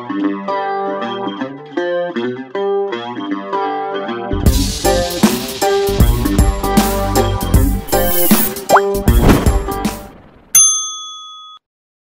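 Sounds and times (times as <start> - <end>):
drum-backed jingle music: 4.5 - 10.0.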